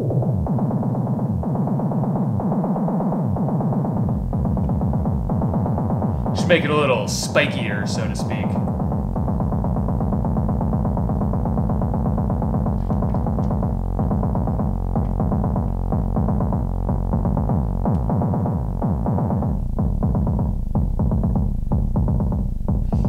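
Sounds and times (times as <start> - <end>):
synth pulsing drum sound: 0.0 - 23.0.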